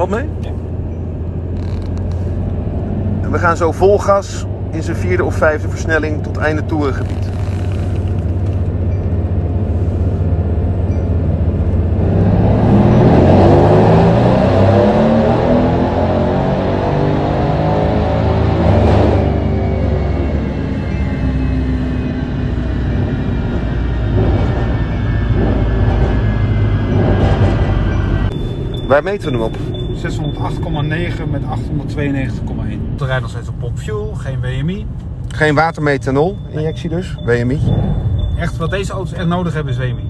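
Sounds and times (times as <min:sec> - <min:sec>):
car engine revving at full throttle: 0:01.4 - 0:33.8
engine whine running down: 0:10.2 - 0:33.0.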